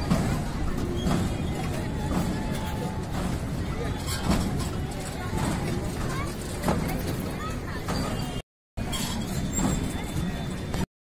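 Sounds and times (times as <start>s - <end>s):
voices chattering: 0.0s - 10.9s.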